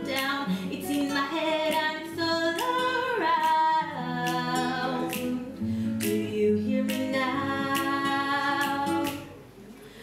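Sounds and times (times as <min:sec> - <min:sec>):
woman singing: 0:00.0 - 0:09.4
acoustic guitar: 0:00.0 - 0:10.0.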